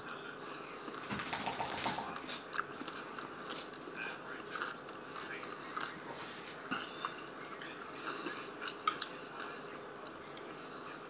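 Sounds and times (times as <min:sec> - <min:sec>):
person chewing: 0:00.9 - 0:11.0.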